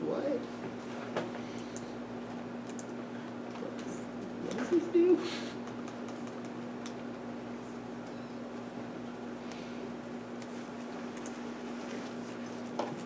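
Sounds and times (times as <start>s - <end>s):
steady room hum: 0.0s - 13.0s.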